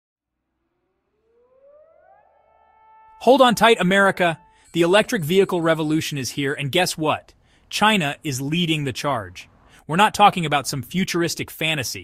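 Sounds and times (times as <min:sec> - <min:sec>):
rising siren-like tone: 0:00.4 - 0:06.4.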